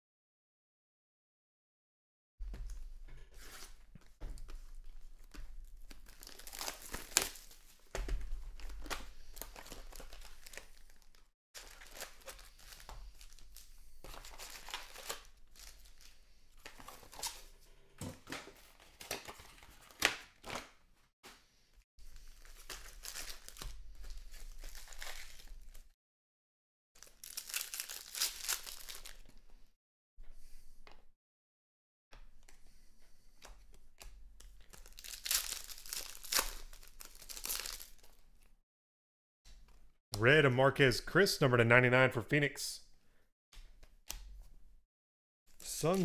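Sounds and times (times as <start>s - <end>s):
packaging tearing and crinkling: 5.8s - 16.1s, 22.2s - 25.9s, 27.0s - 29.3s, 34.6s - 38.2s.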